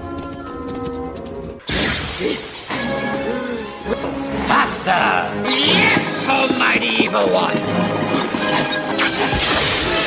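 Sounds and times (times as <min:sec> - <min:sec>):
soundtrack music: 0:00.1 - 0:10.0
loud shattering crash: 0:09.0 - 0:10.0.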